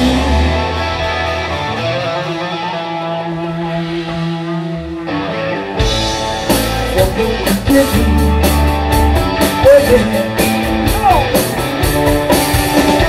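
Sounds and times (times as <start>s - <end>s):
held guitar chords ringing: 0.0s - 13.0s
live rock band playing: 0.0s - 13.0s
drums and cymbals: 5.8s - 13.0s.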